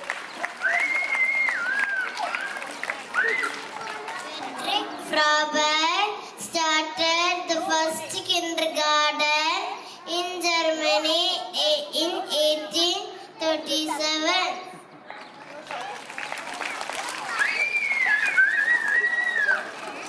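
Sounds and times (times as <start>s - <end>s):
child singing into a microphone: 4.9s - 14.8s.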